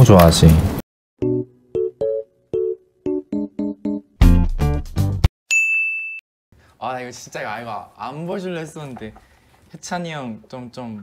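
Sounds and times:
high bell-like ding: 5.5s - 6.2s.

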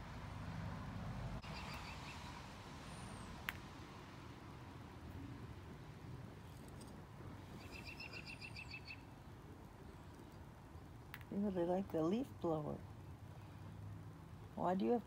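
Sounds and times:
bird trilling: 7.6s - 9.1s.

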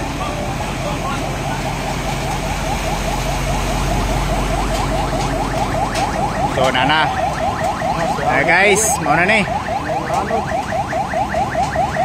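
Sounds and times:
van engine running: 0.0s - 10.4s
water surging: 0.0s - 10.5s
crowd talking: 0.0s - 10.8s.

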